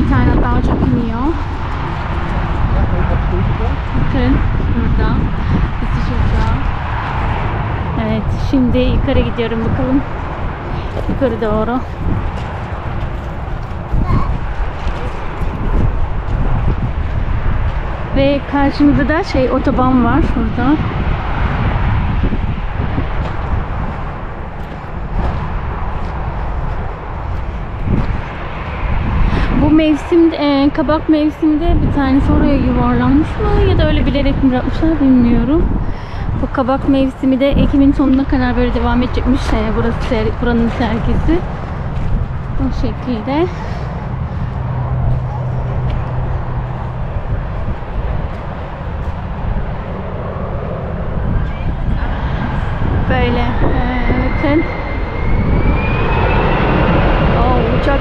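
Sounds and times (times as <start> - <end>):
jet airliner whine: 0.0 - 58.0
motorway traffic rumble: 0.0 - 58.0
wind buffeting microphone: 0.0 - 58.0.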